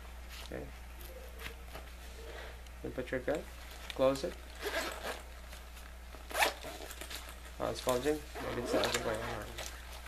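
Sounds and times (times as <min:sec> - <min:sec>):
zipper rasp on fabric case: 0:04.6 - 0:05.3, 0:06.3 - 0:07.0, 0:08.3 - 0:09.4.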